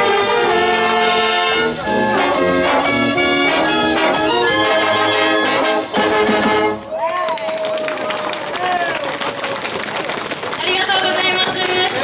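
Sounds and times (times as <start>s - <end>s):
brass marching band playing: 0.0s - 7.0s
crowd noise and voices: 0.0s - 12.0s.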